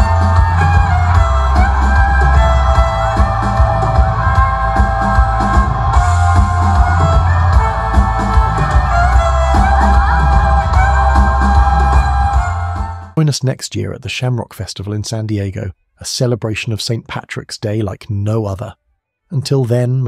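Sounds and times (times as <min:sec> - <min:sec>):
electric guitar: 0:00.0 - 0:13.0
drums: 0:00.0 - 0:13.2
fiddle sliding melody: 0:00.0 - 0:13.2
bass: 0:00.0 - 0:20.0.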